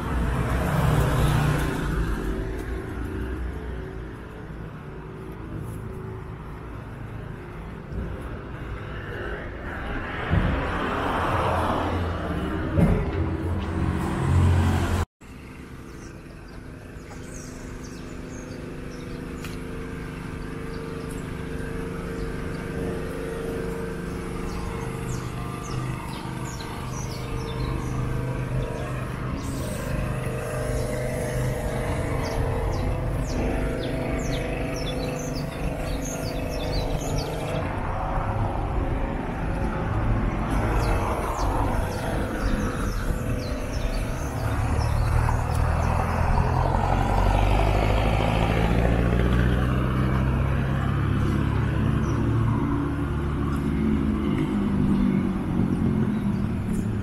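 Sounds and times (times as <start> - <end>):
vehicle engines running: 0.0 - 57.0
birds chirping: 15.7 - 37.8, 38.8 - 57.0.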